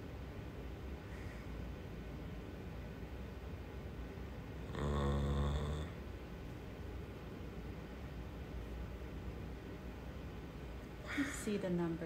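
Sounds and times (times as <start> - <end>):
faint room noise: 0.0 - 12.0
man humming: 4.7 - 6.0.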